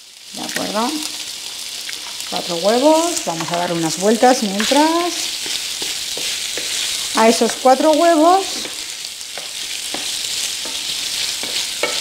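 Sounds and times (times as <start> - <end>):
bacon sizzling in a frying pan: 0.0 - 12.0.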